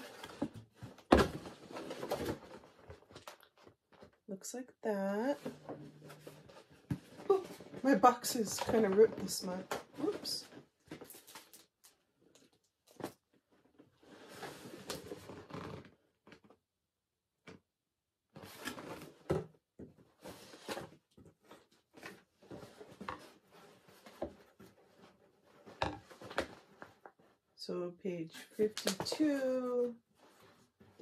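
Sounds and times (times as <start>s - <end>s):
paper and cardboard rustling: 0.0s - 4.2s, 20.0s - 27.4s.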